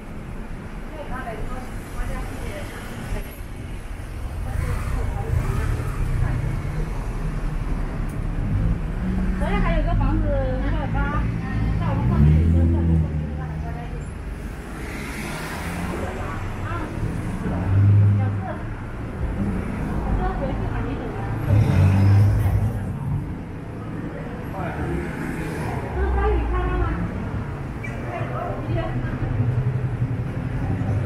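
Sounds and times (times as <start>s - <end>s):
cars passing: 0.0s - 31.0s
indistinct voices: 4.1s - 31.0s.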